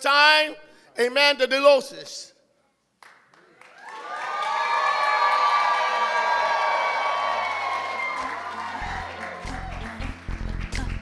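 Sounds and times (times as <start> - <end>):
guests cheering: 3.6 - 10.2
music with bass beat: 8.8 - 11.0.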